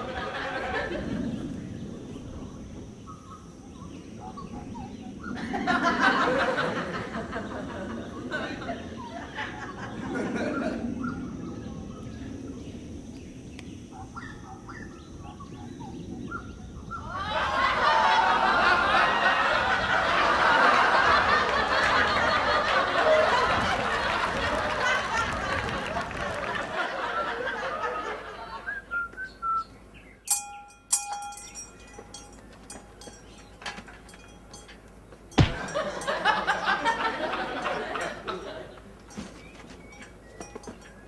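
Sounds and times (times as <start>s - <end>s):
audience laugh track: 0.0s - 1.4s, 5.4s - 10.9s, 17.1s - 28.9s, 35.5s - 38.8s
bird-like chirps: 1.8s - 5.4s, 10.5s - 17.1s
person whistling: 28.7s - 29.7s.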